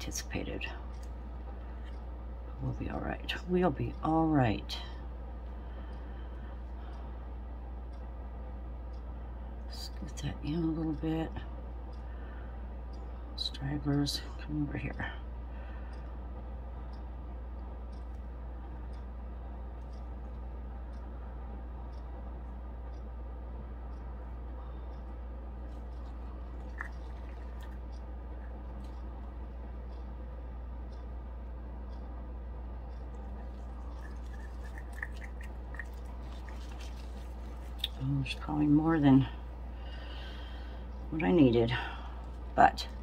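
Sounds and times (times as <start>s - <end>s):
low hum of room tone: 0.0s - 43.0s.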